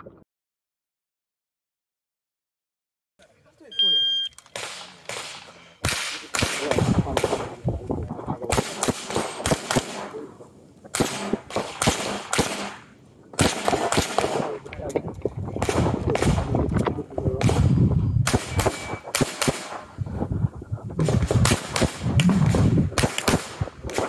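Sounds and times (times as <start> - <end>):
shot timer beep: 3.7 - 4.4, 18.5 - 19.0
pistol shots: 4.5 - 7.6, 8.4 - 10.3, 10.9 - 14.7, 17.4 - 20.0, 21.0 - 24.0.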